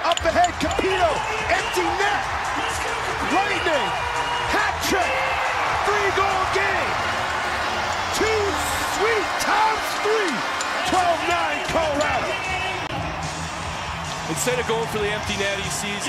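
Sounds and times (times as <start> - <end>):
crowd cheering: 0.0 - 16.0
voices yelling and whooping: 0.4 - 14.0.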